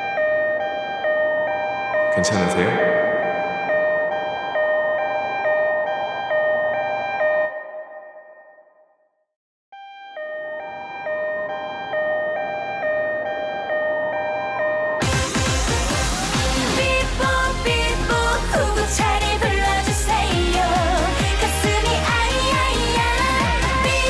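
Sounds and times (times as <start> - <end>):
two-tone ambulance siren: 0.0 - 9.2, 9.8 - 24.0.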